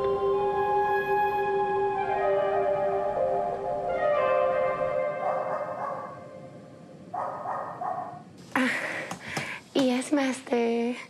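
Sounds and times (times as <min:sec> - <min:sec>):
background music: 0:00.0 - 0:07.7
dog barking: 0:05.2 - 0:06.2, 0:07.2 - 0:08.2.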